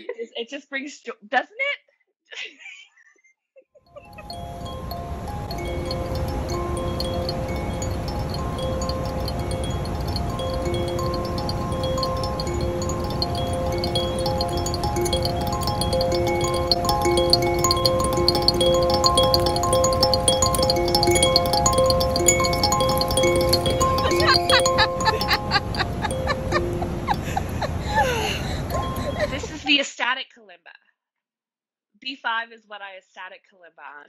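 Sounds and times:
kalimba tines plucked: 4.1 - 27.3, 28.0 - 29.6.

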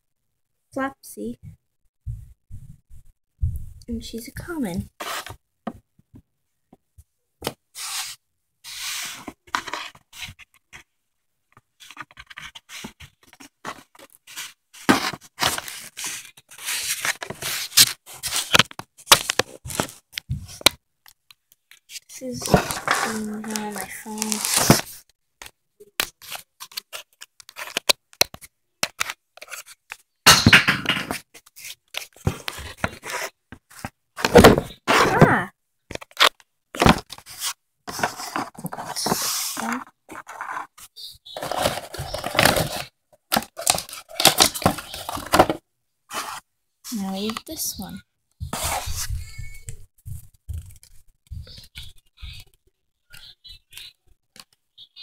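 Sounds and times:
plastic toys scraping and rustling: 4.4 - 5.4, 7.7 - 10.9, 11.6 - 20.7, 21.7 - 25.1, 26.1 - 30.1, 30.9 - 52.6
packaging ripping and crinkling: 15.0 - 20.0, 22.3 - 25.0, 41.3 - 46.4.

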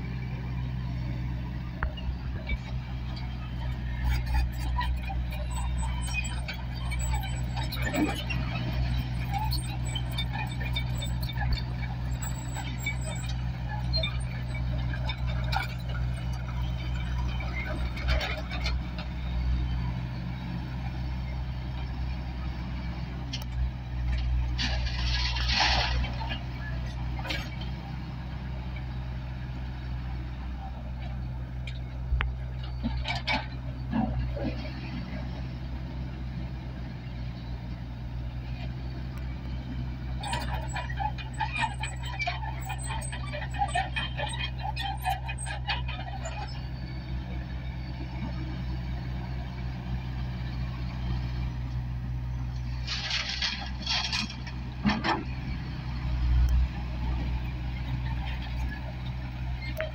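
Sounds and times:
diesel engine running: 0.0 - 59.9.

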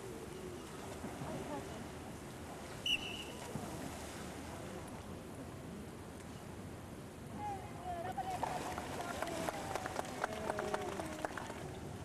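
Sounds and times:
low background hiss: 0.0 - 12.0
whistle blast: 2.8 - 3.4.

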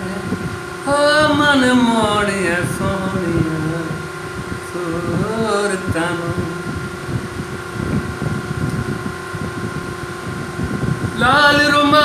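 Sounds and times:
fan humming: 0.0 - 12.0
low microphone rumbling: 0.0 - 12.0.

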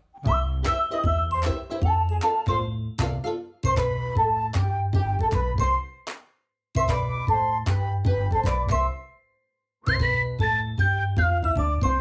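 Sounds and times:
chiming jingle music: 0.2 - 4.1, 8.7 - 12.0.

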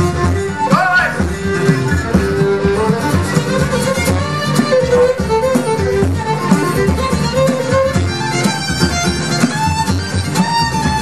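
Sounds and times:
fiddle melody: 0.0 - 11.0
plucked strings accompaniment: 0.0 - 11.0.

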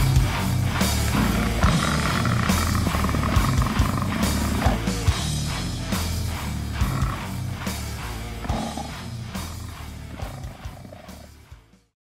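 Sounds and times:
heavy rock band playing: 0.0 - 11.9.

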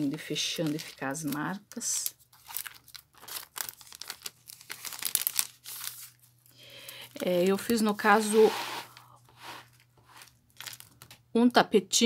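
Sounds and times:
paper cards rustling: 0.0 - 11.2
plastic bag crinkling: 0.0 - 11.2.

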